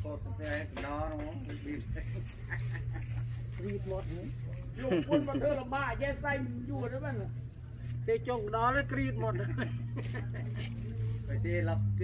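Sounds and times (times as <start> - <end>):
low engine hum: 0.0 - 12.0.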